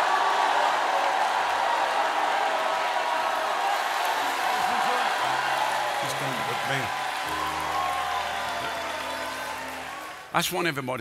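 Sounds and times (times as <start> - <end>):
congregation cheering and clapping: 0.0 - 10.4.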